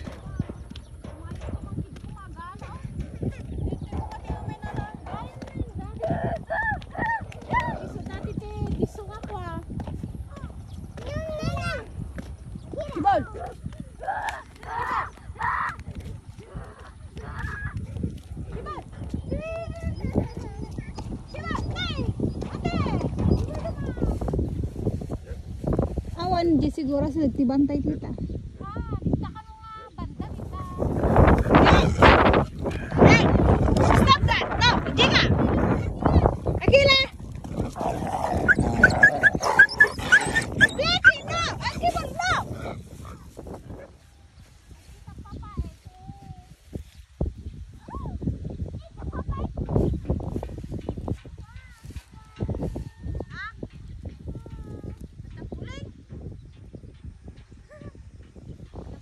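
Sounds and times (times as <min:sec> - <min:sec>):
dog yelping and whining: 0:38.4 - 0:41.6.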